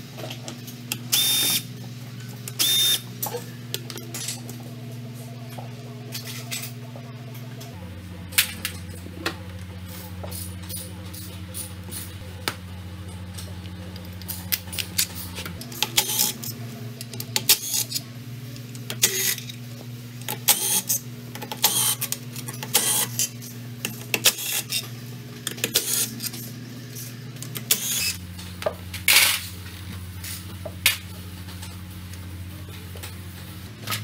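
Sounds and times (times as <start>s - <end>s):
low hum: 0.8s - 18.9s.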